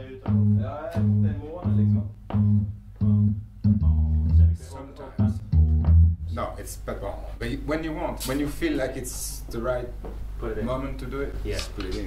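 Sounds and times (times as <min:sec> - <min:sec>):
man's voice: 0:00.0 - 0:02.2, 0:04.3 - 0:05.6
repeated low bass notes: 0:00.0 - 0:06.6.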